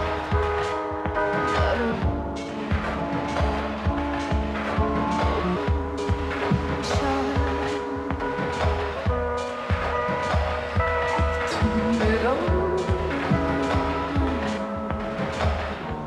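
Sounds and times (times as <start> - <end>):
kick drum beat: 0.0 - 16.0
low bass: 0.0 - 16.0
synth chords: 0.0 - 16.0.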